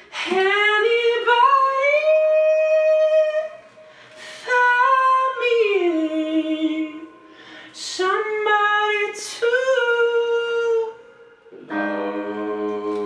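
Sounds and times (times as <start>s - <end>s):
man singing in a high voice: 0.0s - 13.0s
breath: 3.8s - 4.5s, 7.2s - 7.8s.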